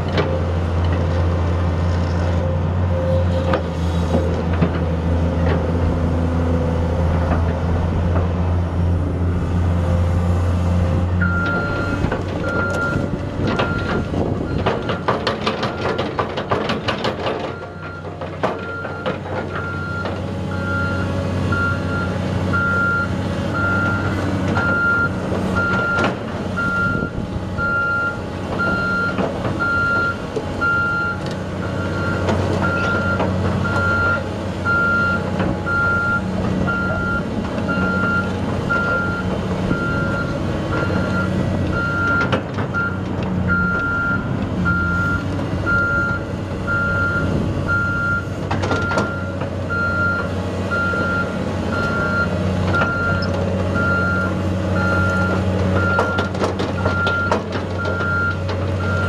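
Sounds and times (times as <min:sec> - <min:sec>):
diesel engine running: 0:00.0 - 0:59.0.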